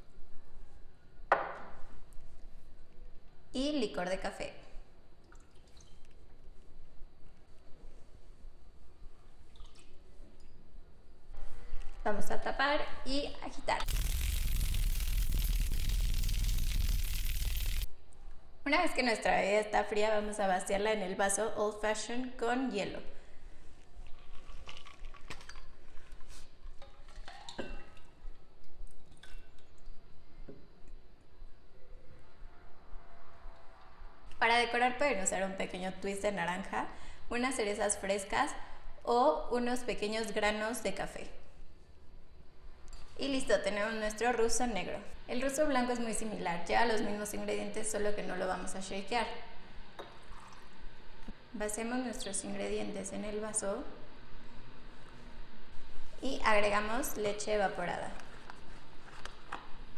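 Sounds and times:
liquid pouring into shaker with ice: 13.8s - 17.9s.

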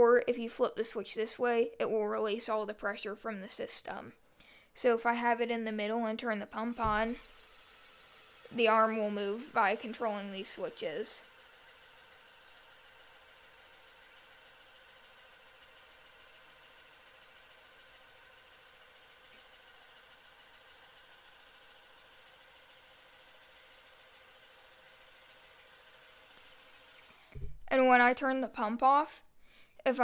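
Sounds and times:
small motor whirring: 6.7s - 27.6s.

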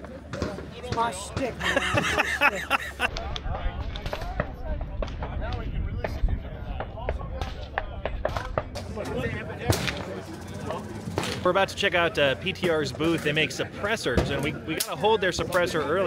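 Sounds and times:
wind rumble on microphone: 3.1s - 9.5s.

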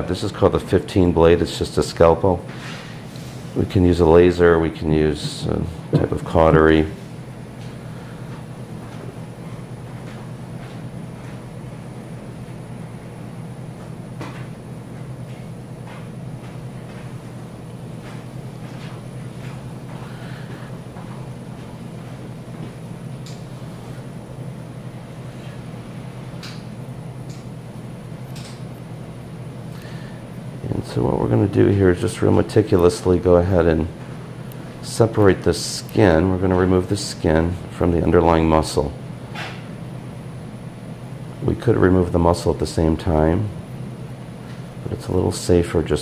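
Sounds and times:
low room hum: 0.0s - 46.0s
surgical instruments clicking: 28.3s - 28.8s.

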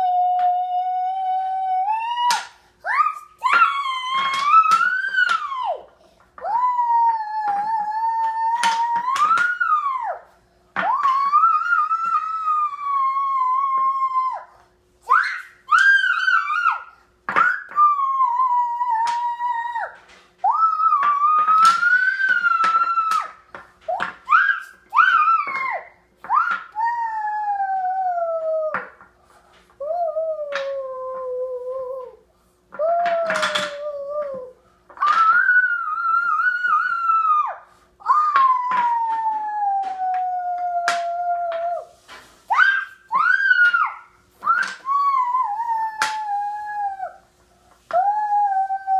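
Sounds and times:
howl-like vocal calls: 32.8s - 41.9s, 47.9s - 48.9s.

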